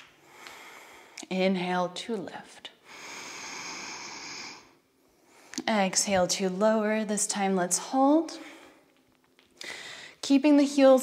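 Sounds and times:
woman breathing in: 0:02.8 - 0:05.6, 0:09.6 - 0:10.2.

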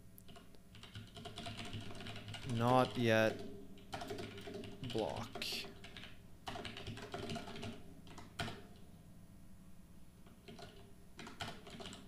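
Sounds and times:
typing on computer keyboard: 0:00.3 - 0:08.8, 0:10.4 - 0:12.0.

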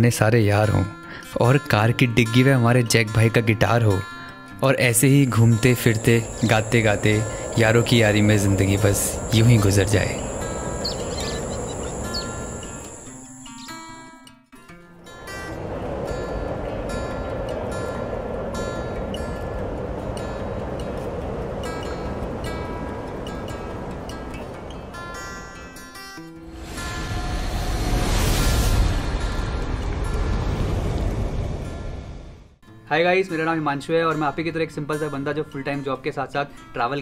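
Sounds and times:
faint held music notes: 0:04.6 - 0:13.9
hissing wash: 0:05.0 - 0:13.8, 0:15.2 - 0:25.6
insect drone: 0:05.0 - 0:14.0, 0:15.3 - 0:25.8, 0:26.5 - 0:32.3
deep rumble: 0:05.2 - 0:13.2, 0:26.6 - 0:32.6
bird chirps: 0:05.3 - 0:13.9.

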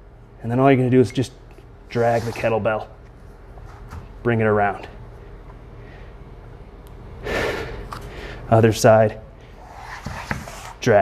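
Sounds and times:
man breathing sharply: 0:07.2 - 0:08.5.

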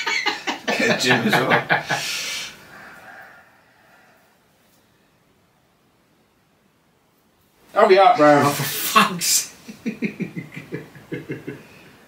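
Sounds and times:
person exhaling sharply: 0:02.0 - 0:03.1.

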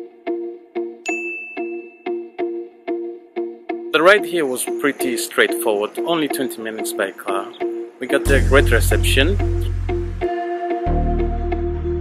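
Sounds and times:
background music with steady beat: 0:00.0 - 0:12.0
notification chime ding: 0:01.1 - 0:02.2.

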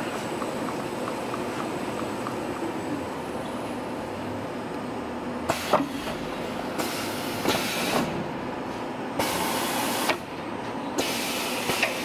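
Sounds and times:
hiss: 0:06.8 - 0:08.1, 0:09.2 - 0:10.2, 0:11.0 - 0:12.0.

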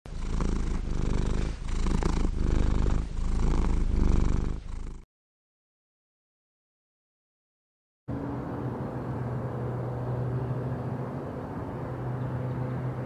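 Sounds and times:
cat purring: 0:00.1 - 0:05.1.

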